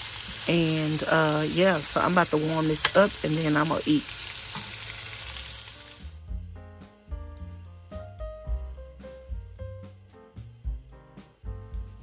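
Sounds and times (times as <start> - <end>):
meat sizzling in a skillet: 0.0 - 6.3.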